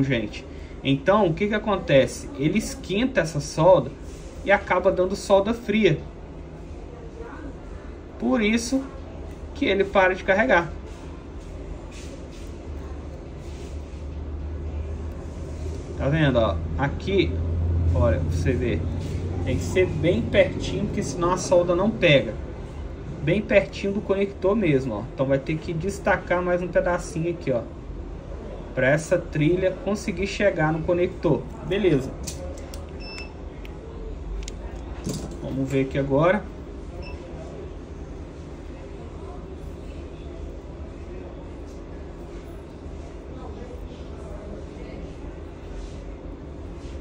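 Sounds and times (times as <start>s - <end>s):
steady low hum: 0.0s - 47.0s.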